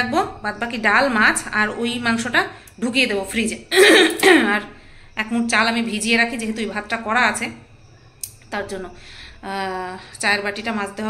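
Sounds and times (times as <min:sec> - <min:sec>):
woman clearing her throat: 0:03.7 - 0:04.6.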